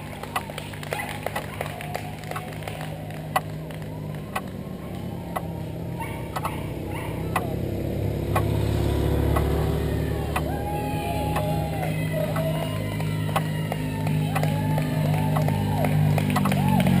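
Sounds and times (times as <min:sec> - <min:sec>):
motorcycle passing by: 0:00.0 - 0:17.0
sharp clicks: 0:08.3 - 0:08.6, 0:16.2 - 0:16.6.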